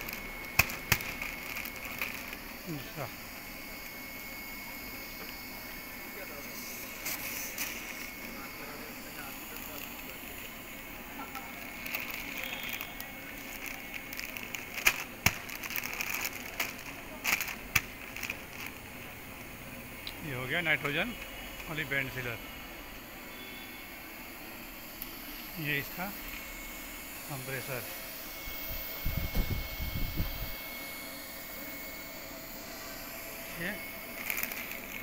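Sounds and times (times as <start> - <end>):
foil packets crinkling: 0.0 - 2.8, 9.2 - 19.0, 33.6 - 35.0
sealer machine humming and whining: 0.0 - 35.0.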